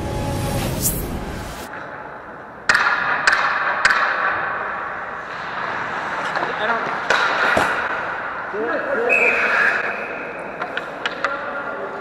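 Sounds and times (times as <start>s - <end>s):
music: 0.0s - 1.7s
echoing rink noise: 0.0s - 12.0s
hockey sticks clacking on puck: 2.7s - 8.3s, 9.3s - 12.0s.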